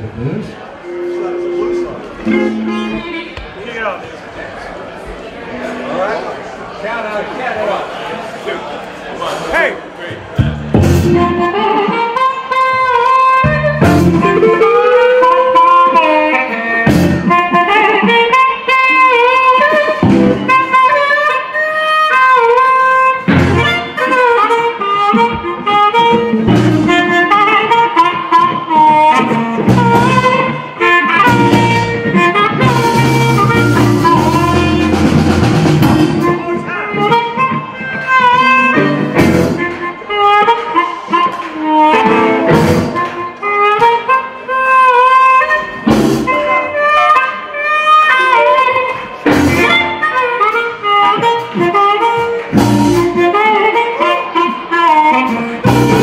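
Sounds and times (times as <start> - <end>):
electric guitar: 0.0 - 3.6, 10.4 - 56.0
amplified harmonica playing lead: 0.2 - 3.4, 10.4 - 56.0
drums: 10.0 - 20.9, 23.1 - 44.0, 45.6 - 46.8, 48.1 - 56.0.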